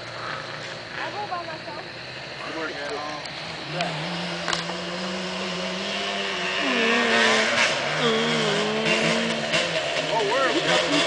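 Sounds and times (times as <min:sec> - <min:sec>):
off-road vehicle engine revving: 0:00.0 - 0:11.0.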